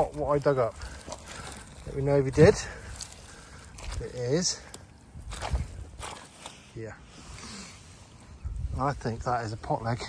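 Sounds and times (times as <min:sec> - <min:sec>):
rustling of soil and straw: 0:00.0 - 0:10.0.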